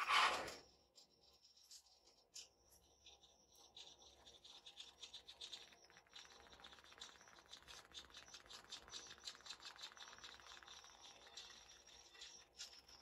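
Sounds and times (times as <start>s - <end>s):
faint light ticks and scratches: 0.0s - 13.0s.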